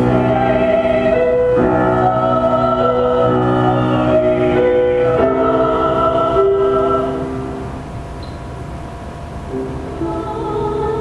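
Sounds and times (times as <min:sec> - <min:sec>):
man and woman singing duet: 0:00.0 - 0:07.3, 0:10.0 - 0:11.0.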